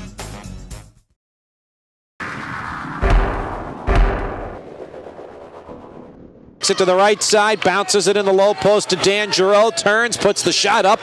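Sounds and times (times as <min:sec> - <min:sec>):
deep booming hit: 0:02.2 - 0:06.6.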